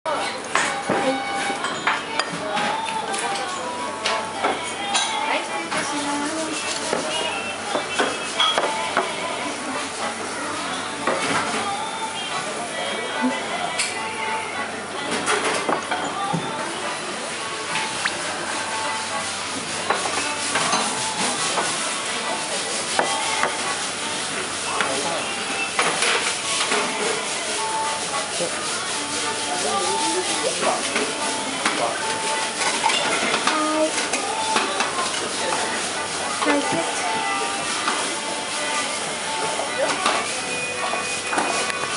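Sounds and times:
dishes and cutlery clinking: 0:00.1 - 0:09.2, 0:13.3 - 0:14.1, 0:15.0 - 0:16.6, 0:17.7 - 0:41.9.

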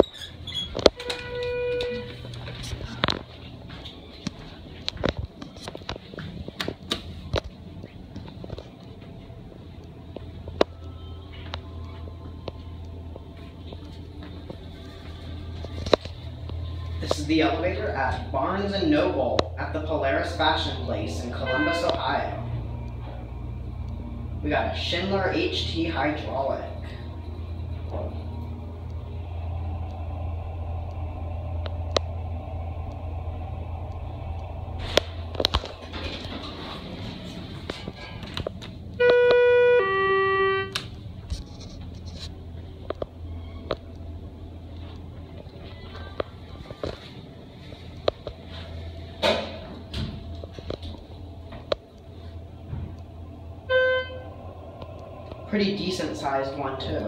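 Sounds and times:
elevator humming: 0:00.0 - 0:57.0.

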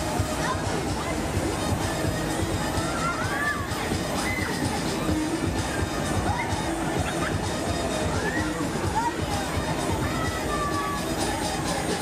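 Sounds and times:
loud music with heavy beat: 0:00.0 - 0:12.0.

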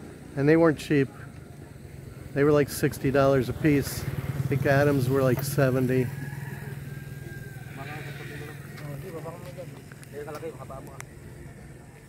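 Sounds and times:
faint voices talking: 0:00.0 - 0:12.0
low engine hum: 0:00.0 - 0:12.0.

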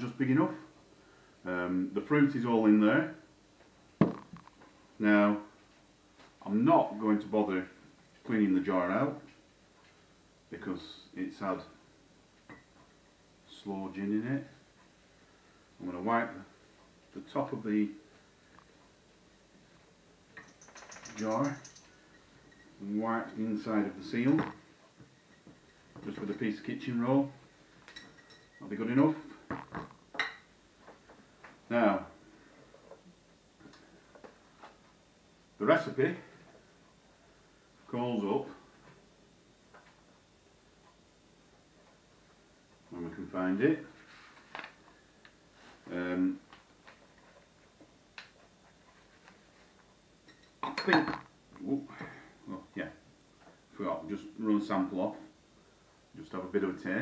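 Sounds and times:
plastic tub knocking on table: 0:04.0 - 0:04.4.

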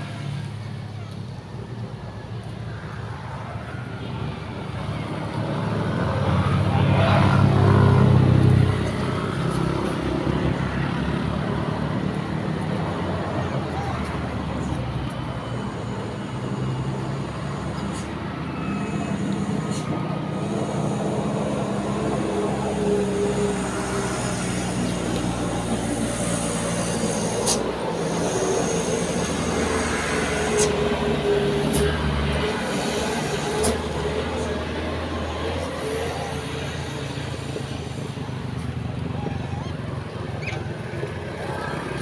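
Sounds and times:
vehicle engine rumbling: 0:00.0 - 0:42.0.

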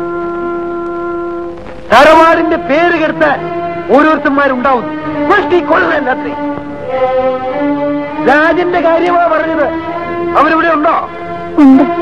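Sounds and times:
sustained film score note: 0:00.0 - 0:12.0.

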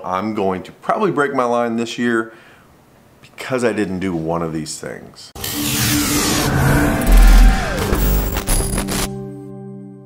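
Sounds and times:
logo intro music sting: 0:05.4 - 0:09.2.

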